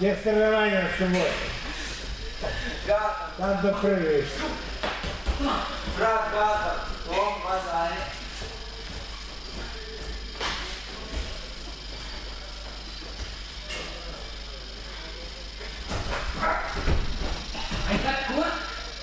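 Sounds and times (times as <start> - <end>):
steady hall hum: 0.0 - 19.0.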